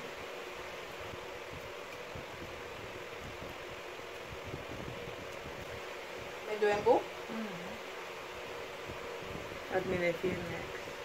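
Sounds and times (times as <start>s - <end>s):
steady fan-like hiss: 0.0s - 11.0s.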